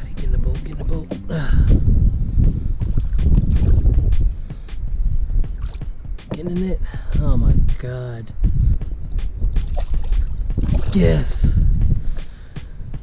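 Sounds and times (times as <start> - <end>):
low rumble: 0.0 - 5.8, 8.3 - 12.2
fish thrashing and splashing water: 9.6 - 11.0
person exclaiming: 10.8 - 11.6.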